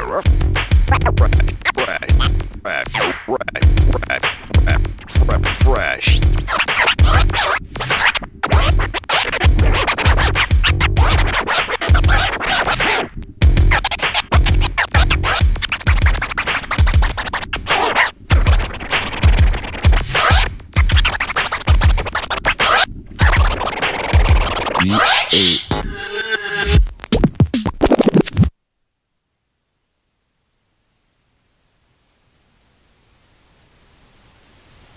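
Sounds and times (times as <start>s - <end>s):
hip-hop beat with kick drum: 0.0s - 26.0s, 26.6s - 28.5s
turntable scratching: 0.0s - 28.5s.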